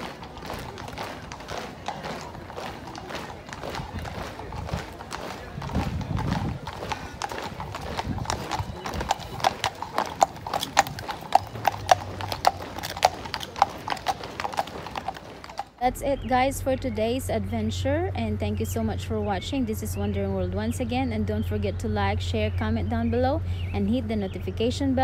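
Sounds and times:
horse hooves clip-clopping on road: 0.0 - 15.9.

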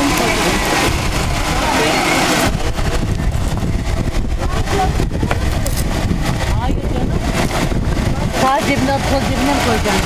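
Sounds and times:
car engine running: 0.0 - 10.0.

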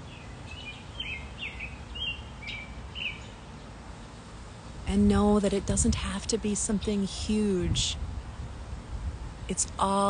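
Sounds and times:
small bird chirping: 0.0 - 3.4
low steady background noise: 0.0 - 10.0.

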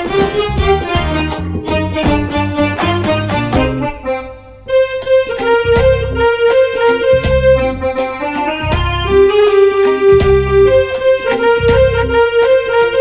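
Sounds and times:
deep beat thumps: 0.0 - 4.2, 5.6 - 9.4, 10.1 - 12.3
keyboard melody of held notes: 0.0 - 13.0.

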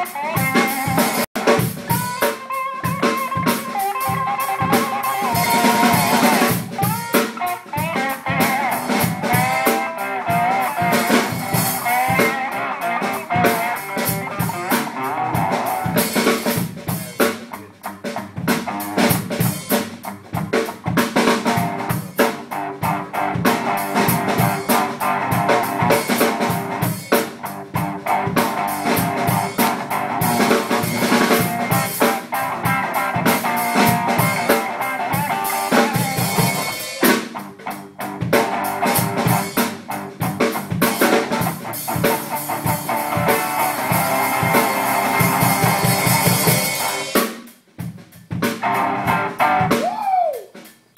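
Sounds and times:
electric guitar sustaining notes: 0.0 - 16.0, 48.6 - 49.8
drum kit beat: 0.0 - 50.9.

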